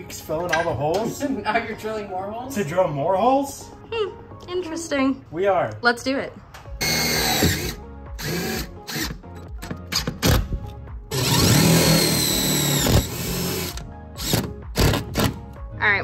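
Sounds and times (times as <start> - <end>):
background music: 0.0 - 16.0
cordless drill driving screws: 6.8 - 9.2, 11.1 - 15.3.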